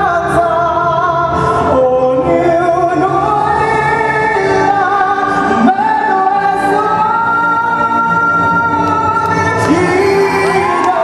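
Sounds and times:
amplified backing music: 0.0s - 11.0s
man singing into a microphone: 0.0s - 11.0s.

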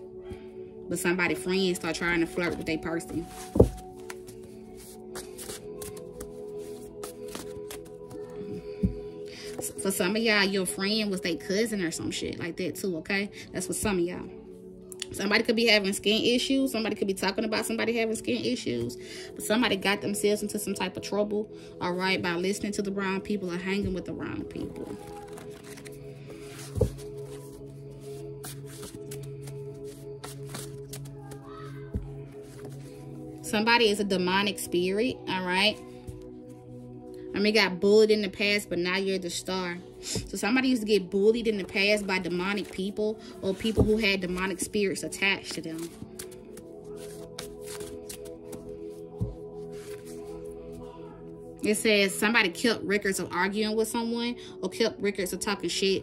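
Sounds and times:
ambient background music: 0.0s - 56.0s
cards being shuffled: 3.2s - 8.4s, 24.7s - 33.0s, 45.4s - 50.3s.

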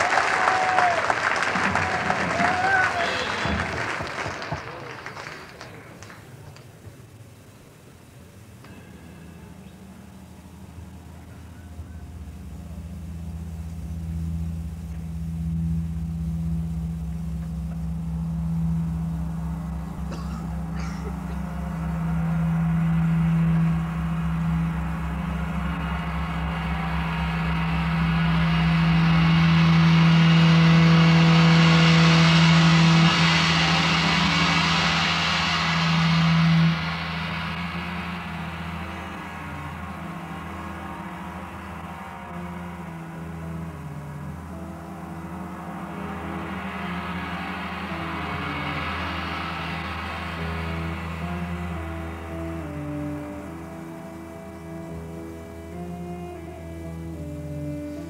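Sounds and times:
steady low drone: 0.0s - 58.0s
psychedelic rock band playing: 8.6s - 58.0s.

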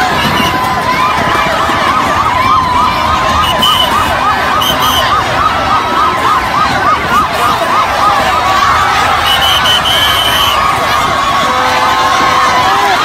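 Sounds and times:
large crowd din: 0.0s - 13.0s
siren yelping: 0.0s - 13.0s.

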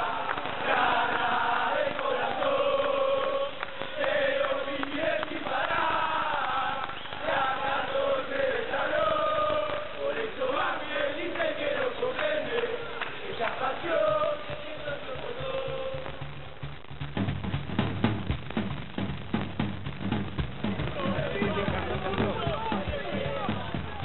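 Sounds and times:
football supporters chanting: 0.0s - 16.3s, 20.6s - 24.0s
drum beat with low bass: 11.6s - 24.0s.

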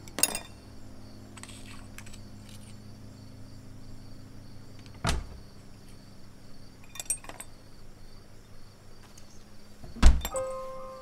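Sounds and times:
faint insect chirping: 0.0s - 11.0s
low hum: 0.0s - 11.0s.

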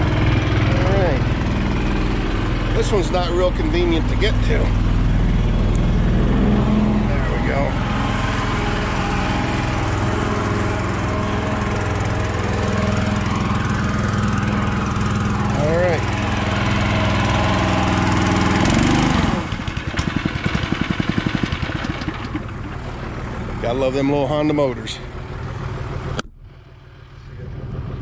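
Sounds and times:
small engine running: 0.0s - 28.0s.

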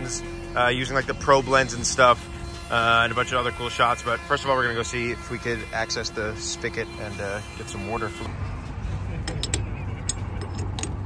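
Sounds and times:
low steady outdoor rumble: 0.0s - 11.0s.

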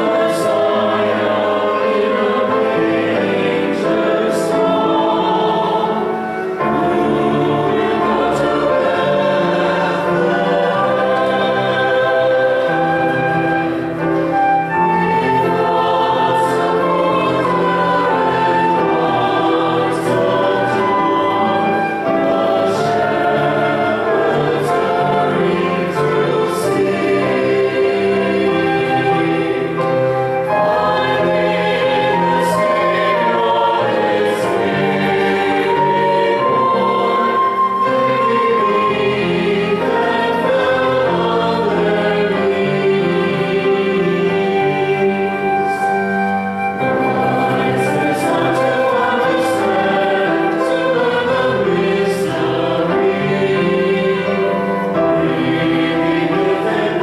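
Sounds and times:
choir singing: 0.0s - 57.0s
flute: 0.0s - 57.0s
piano: 0.0s - 57.0s.

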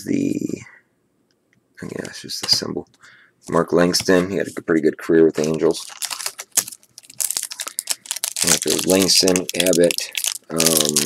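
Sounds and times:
foil card pack crinkling: 5.4s - 11.0s.

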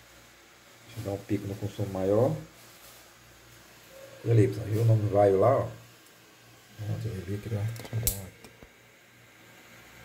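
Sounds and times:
sharp hiss-like click: 6.0s - 6.2s, 7.4s - 8.8s.

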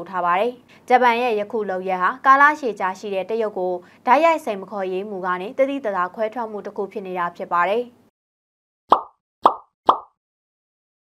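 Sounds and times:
pop sound effects: 8.9s - 10.2s.

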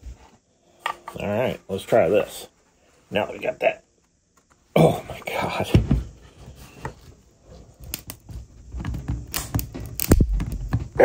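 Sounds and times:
plastic cracks: 7.8s - 11.0s.

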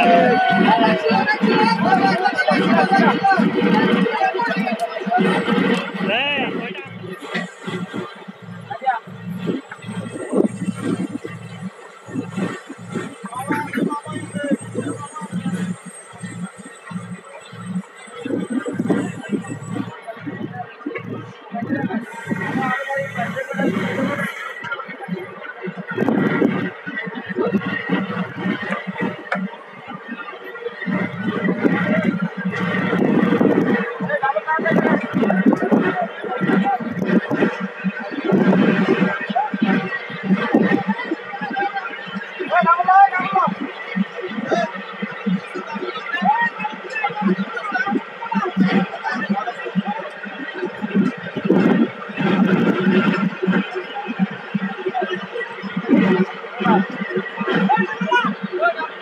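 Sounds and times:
men calling and shouting: 0.0s - 24.7s
voice gliding up and down: 0.0s - 29.8s
music: 0.0s - 59.0s
voices: 0.0s - 59.0s
steady machine hum: 5.3s - 25.3s.

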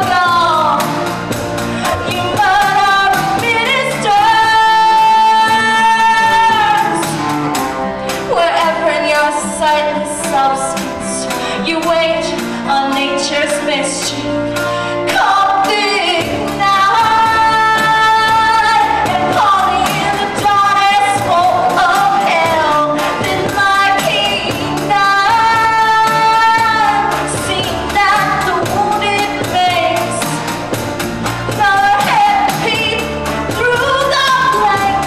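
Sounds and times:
rock band playing: 0.0s - 35.0s.

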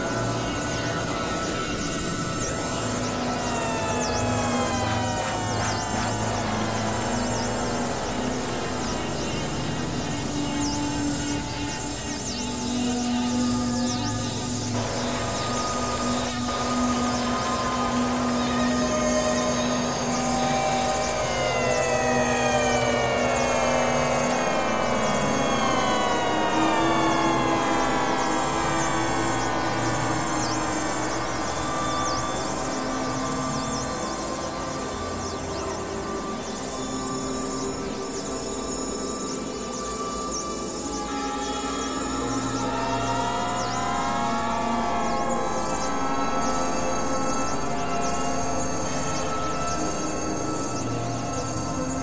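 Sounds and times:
experimental electronic drone music: 0.0s - 52.0s.

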